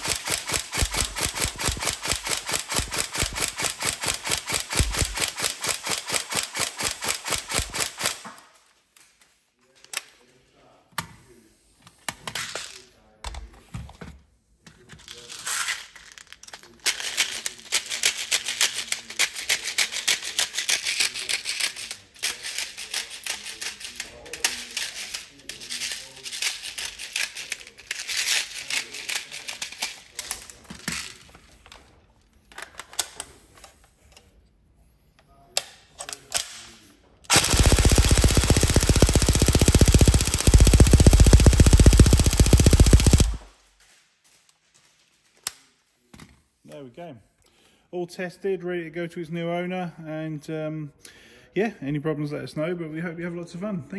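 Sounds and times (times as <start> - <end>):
airsoft gun full-auto burst: 0.0 - 8.2, 37.3 - 43.5
rapid clicking and rattling: 0.0 - 8.2, 37.3 - 43.5.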